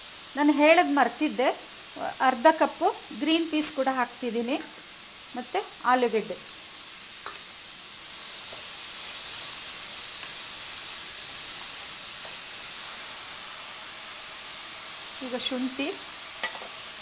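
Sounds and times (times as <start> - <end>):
vegetables sizzling in oil: 0.0 - 17.0.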